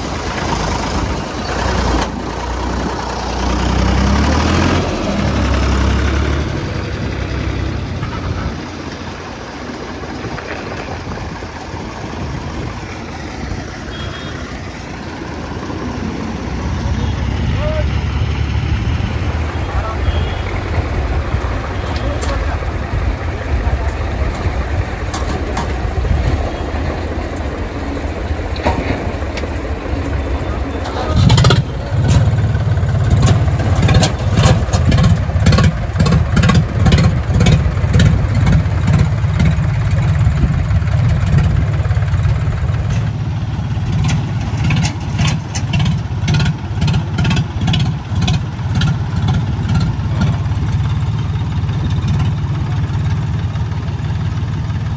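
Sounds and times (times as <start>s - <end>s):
diesel tractor engines labouring: 0.0s - 54.9s.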